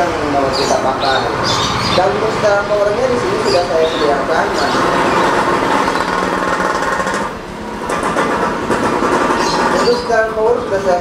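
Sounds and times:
machine rattling: 0:02.5 - 0:11.0.

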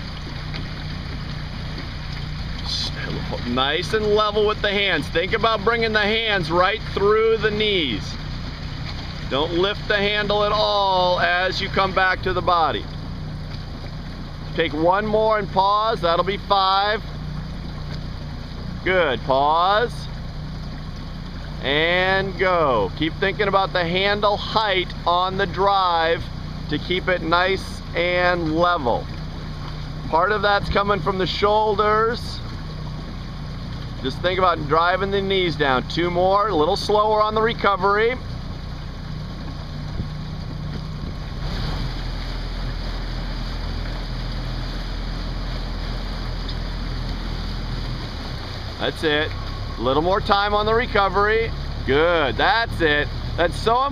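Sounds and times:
motorboat engine humming: 0:00.0 - 0:53.9
water noise: 0:00.0 - 0:53.9.

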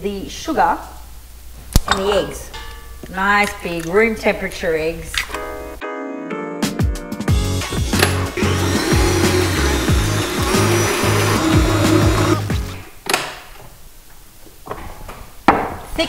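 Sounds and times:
background music with beat: 0:05.8 - 0:12.8
stand mixer running: 0:07.8 - 0:12.6.

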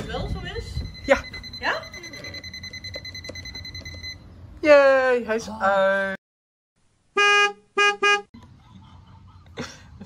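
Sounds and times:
high-pitched alarm tone: 0:00.7 - 0:04.2.

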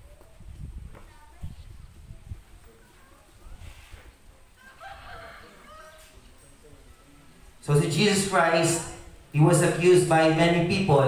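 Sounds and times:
rooster crowing faintly: 0:04.5 - 0:06.4.

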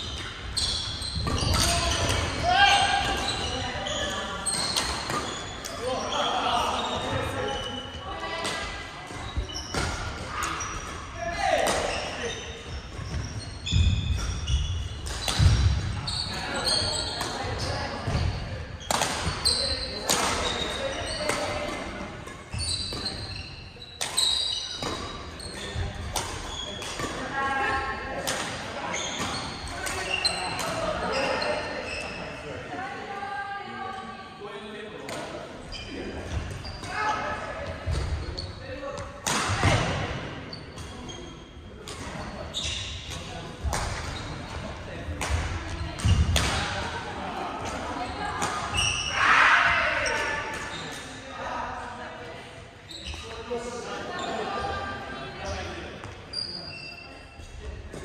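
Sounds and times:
players' voices: 0:00.1 - 0:58.0
racket hitting shuttlecock: 0:18.9 - 0:19.4, 0:39.2 - 0:40.0.

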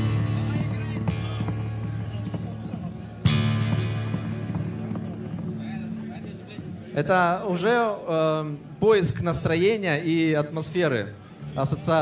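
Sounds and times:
acoustic guitar with delay: 0:00.0 - 0:07.6
percussive taps like hooves: 0:00.2 - 0:06.8.

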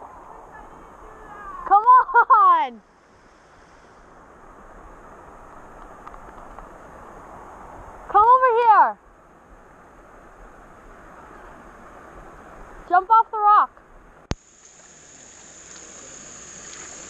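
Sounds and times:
waterfall pouring into pool: 0:14.4 - 0:17.0.

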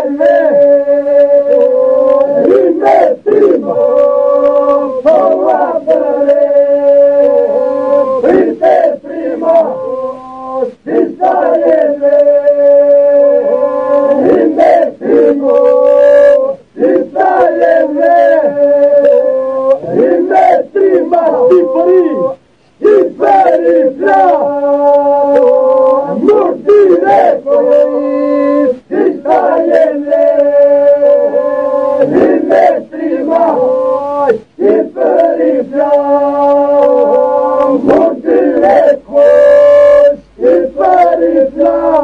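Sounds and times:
higher solo voices: 0:00.0 - 0:42.0
low vocal drone: 0:00.0 - 0:42.0
men singing polyphonic song: 0:00.0 - 0:42.0.

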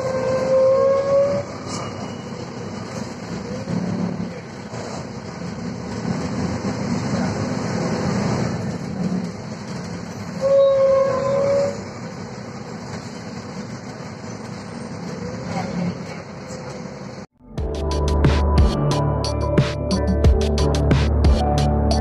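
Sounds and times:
bus engine low rumble: 0:00.0 - 0:22.0.

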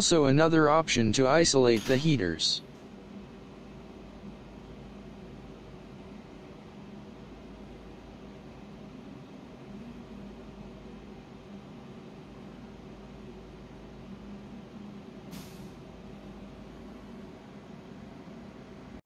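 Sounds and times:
low machine hum: 0:00.0 - 0:19.0.

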